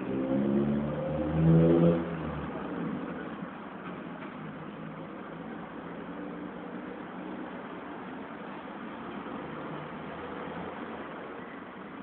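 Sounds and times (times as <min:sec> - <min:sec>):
vehicle engine accelerating past: 0:00.0 - 0:03.2.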